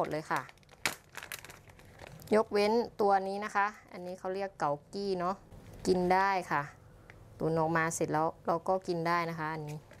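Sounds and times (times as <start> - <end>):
plastic bag crinkling: 0.0 - 2.6.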